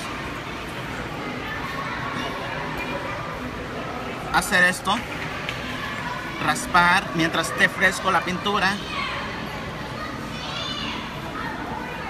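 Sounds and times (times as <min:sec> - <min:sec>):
children's voices: 0:00.0 - 0:04.3, 0:05.3 - 0:12.0.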